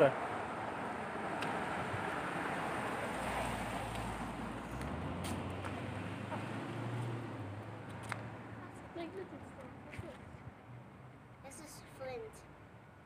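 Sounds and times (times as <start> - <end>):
car driving past: 0.0 - 8.7.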